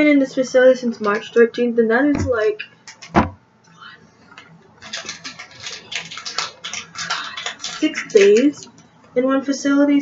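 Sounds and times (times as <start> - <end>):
woman whispering softly: 3.7 - 4.1.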